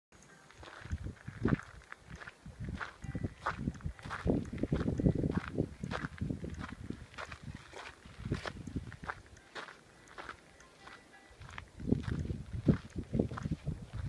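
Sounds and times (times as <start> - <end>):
footsteps on gravel: 0.3 - 14.0.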